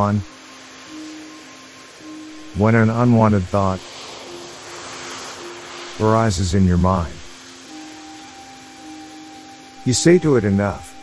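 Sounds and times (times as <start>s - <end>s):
soft sustained background music: 0.0s - 11.0s.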